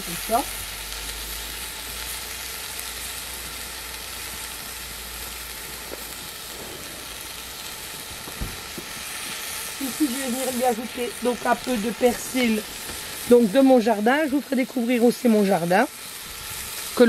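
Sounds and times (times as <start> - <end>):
soup pot sizzling: 0.0 - 17.0.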